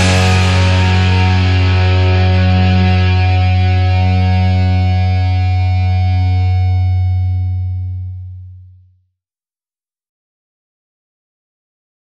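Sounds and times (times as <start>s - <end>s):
distorted electric guitar chord: 0.0s - 8.6s
low bass note: 0.0s - 8.9s.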